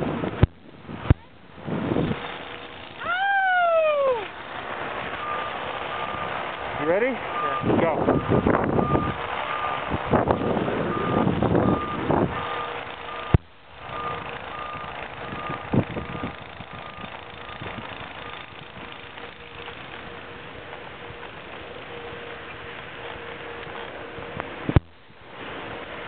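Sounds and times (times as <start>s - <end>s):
skis sliding over snow: 4.0s - 7.6s
faint electronic beeping: 5.2s - 9.8s.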